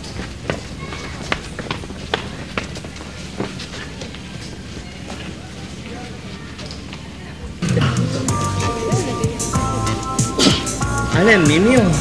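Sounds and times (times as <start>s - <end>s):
footsteps jogging on dirt path: 0.0s - 6.5s.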